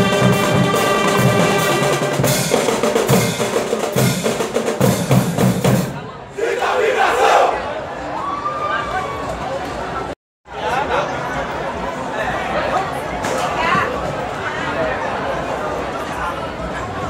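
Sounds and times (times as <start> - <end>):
drum strokes: 0.0 - 6.0
marching band playing: 0.0 - 7.6
crowd cheering and shouting: 6.0 - 11.3.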